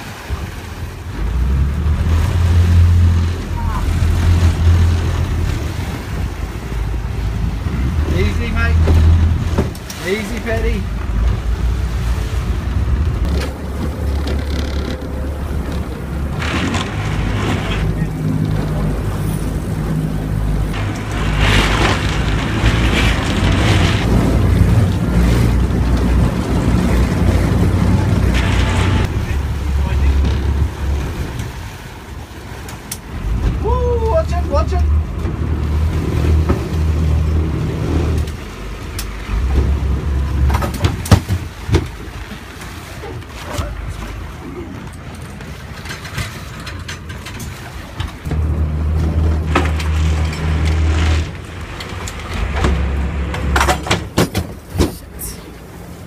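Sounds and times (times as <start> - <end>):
wind gusts on microphone: 0.0 - 34.0
boat engine rumbling: 0.0 - 56.0.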